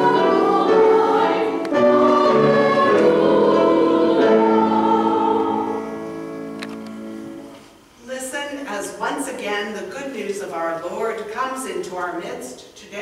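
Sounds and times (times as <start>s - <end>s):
congregation singing: 0.0s - 7.5s.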